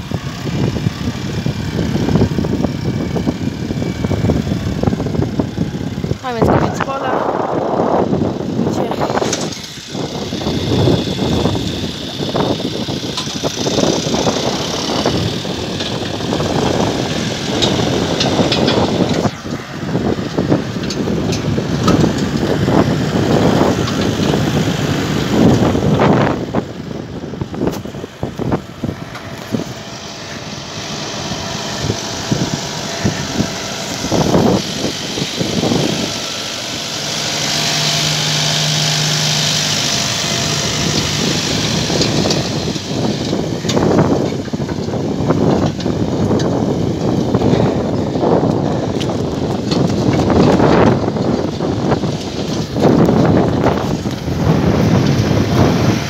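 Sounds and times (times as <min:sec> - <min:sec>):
tractor diesel engine under load: 0:00.0 - 0:56.0
wind on microphone: 0:00.0 - 0:56.0.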